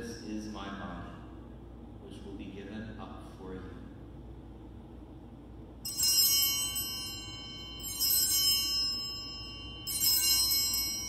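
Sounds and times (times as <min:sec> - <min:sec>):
altar bells jangling: 0:05.8 - 0:11.0.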